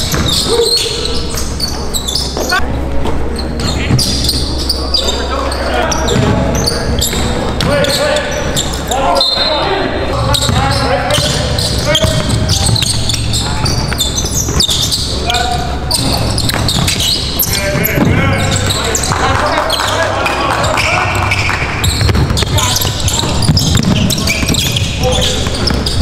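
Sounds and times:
basketball bouncing on hardwood floor: 0:00.0 - 0:00.4, 0:21.8 - 0:26.0.

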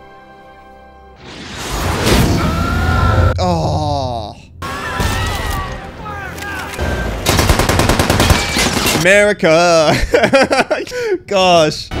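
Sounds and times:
rapid machine-gun fire: 0:07.2 - 0:09.0.

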